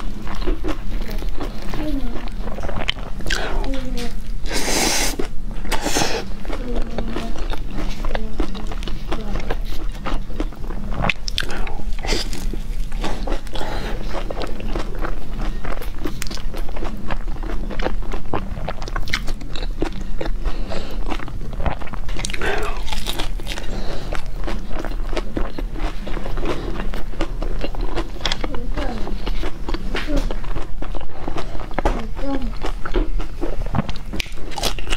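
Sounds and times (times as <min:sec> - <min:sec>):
chewing crunchy pizza: 0:00.0 - 0:34.9.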